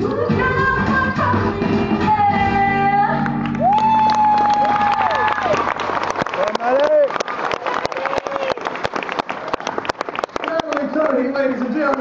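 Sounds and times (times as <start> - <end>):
audience applauding: 3.2 - 12.0
close hand claps: 3.4 - 12.0
person cheering: 3.6 - 5.8, 6.4 - 8.7.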